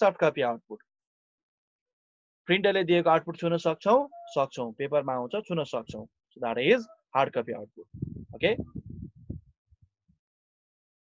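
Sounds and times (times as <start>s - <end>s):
man's voice: 2.5s - 7.8s, 8.4s - 8.7s
faint low thumps: 7.9s - 9.6s.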